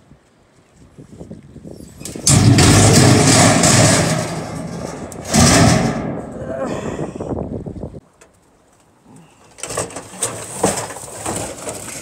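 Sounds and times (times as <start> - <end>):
rustling and scraping: 0.6 - 6.4, 8.4 - 12.0.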